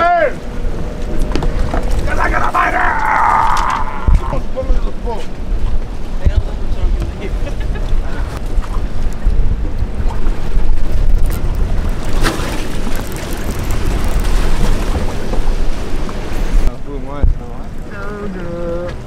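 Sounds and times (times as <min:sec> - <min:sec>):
sea washing around boat: 0:00.0 - 0:19.0
wind buffeting microphone: 0:00.0 - 0:19.0.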